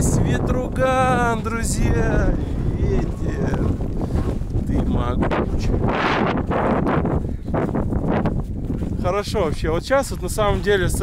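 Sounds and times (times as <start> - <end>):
gusty wind buffeting microphone: 0.0 - 11.0.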